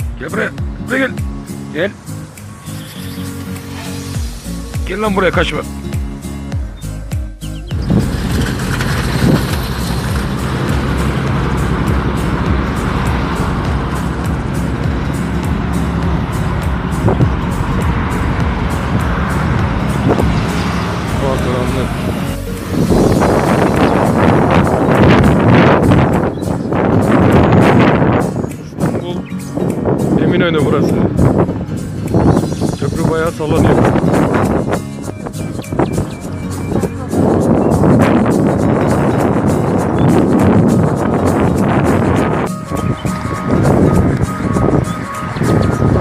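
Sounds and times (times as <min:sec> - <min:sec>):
background music: 0:00.0 - 0:46.0
road traffic: 0:00.0 - 0:46.0
people's voices: 0:36.5 - 0:37.5.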